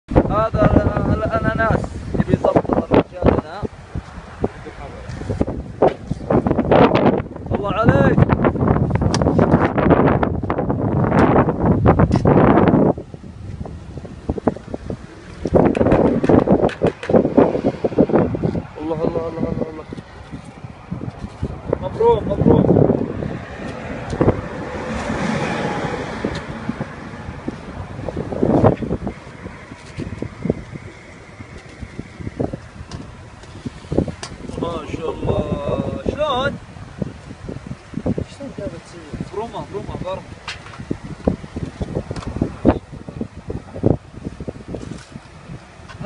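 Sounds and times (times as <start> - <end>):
wind buffeting microphone: 0.1 - 46.0.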